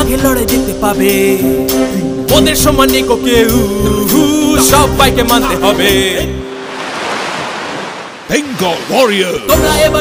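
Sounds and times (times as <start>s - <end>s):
song with singing: 0.0s - 6.5s, 9.1s - 10.0s.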